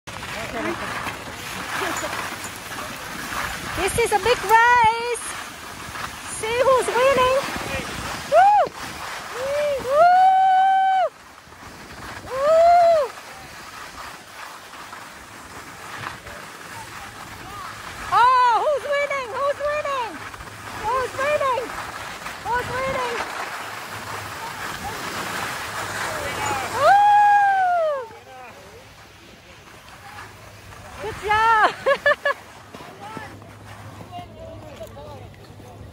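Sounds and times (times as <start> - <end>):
skis sliding on packed snow: 0.1 - 35.9.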